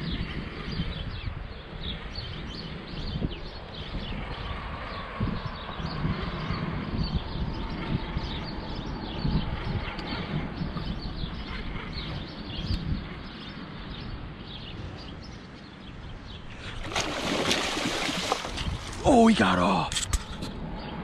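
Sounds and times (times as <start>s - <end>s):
river rushing: 16.8s - 19.7s.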